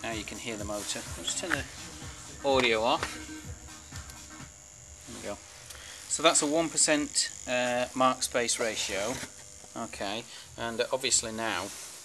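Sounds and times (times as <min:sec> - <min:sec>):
high-pitched motor whine: 0:00.0 - 0:11.7
low mains hum: 0:00.0 - 0:12.0.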